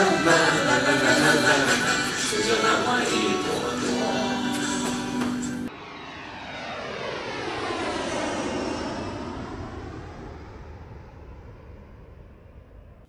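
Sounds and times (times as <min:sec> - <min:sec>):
aircraft passing overhead: 0:00.0 - 0:13.0.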